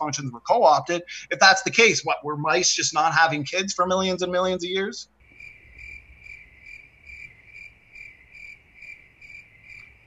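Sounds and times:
person talking: 0.0 - 5.1
cricket chirping: 5.2 - 10.0.

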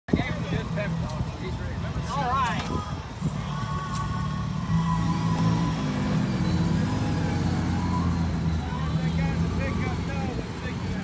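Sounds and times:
people talking: 0.1 - 3.0, 8.6 - 11.0.

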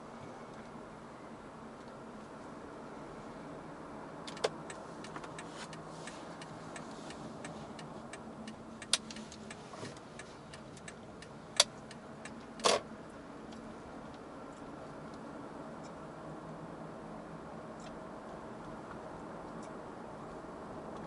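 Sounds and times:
in-car driving noise: 0.0 - 21.0
faint irregular clicks: 4.2 - 12.7.

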